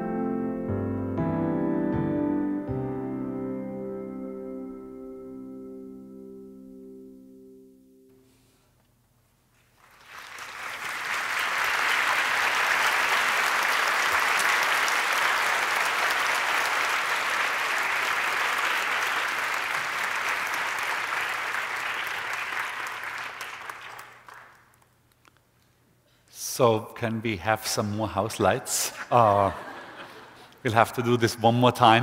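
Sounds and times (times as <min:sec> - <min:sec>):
audience applauding: 0:09.7 - 0:24.9.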